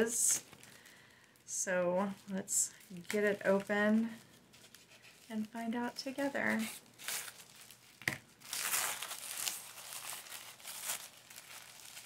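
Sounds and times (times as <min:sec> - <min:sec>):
gift wrapping crinkling and tearing: 0:00.3 - 0:12.0.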